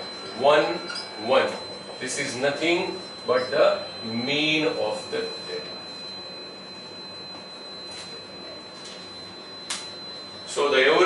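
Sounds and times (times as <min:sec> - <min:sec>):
high-pitched electronic whine: 0:00.0 - 0:11.0
sharp click: 0:09.7 - 0:09.9.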